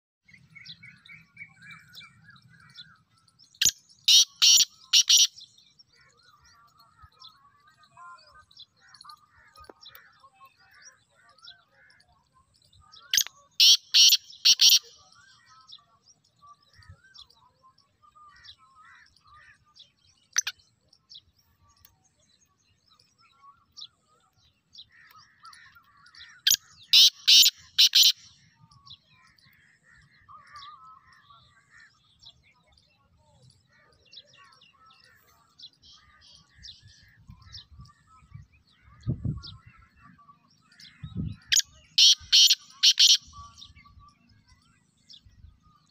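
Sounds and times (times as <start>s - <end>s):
small birds chirping: 0.2s - 45.9s
francolin calling: 3.6s - 12.0s, 12.9s - 16.0s, 24.8s - 29.3s, 41.2s - 44.2s.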